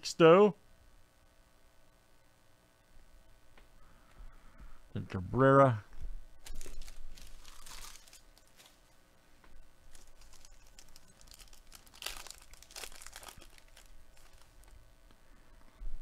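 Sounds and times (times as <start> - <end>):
foil wrapper crinkling and tearing: 6.4 - 8.9, 9.9 - 14.8.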